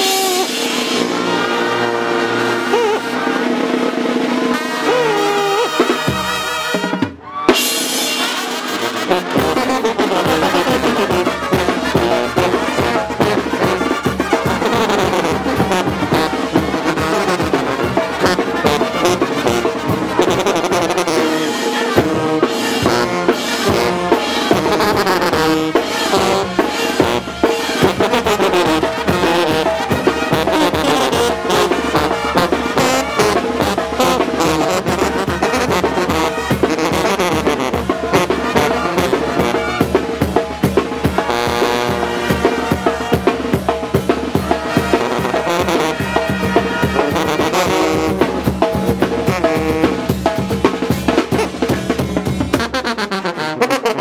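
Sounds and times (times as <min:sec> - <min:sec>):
brass band playing: 0:00.0 - 0:54.0
bass drum beat: 0:09.2 - 0:21.3, 0:22.0 - 0:52.7.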